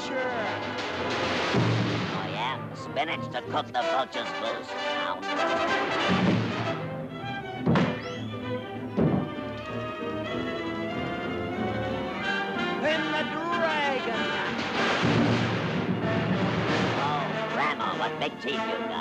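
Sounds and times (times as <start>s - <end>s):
orchestral cartoon music: 0.0s - 19.0s
sharp crash: 0.2s - 2.7s, 6.1s - 6.8s, 7.6s - 8.1s, 14.4s - 17.5s.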